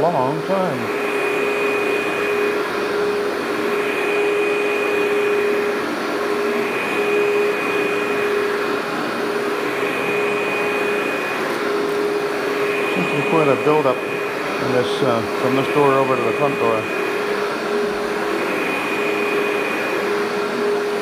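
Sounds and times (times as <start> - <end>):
upright vacuum running on carpet: 0.0 - 21.0.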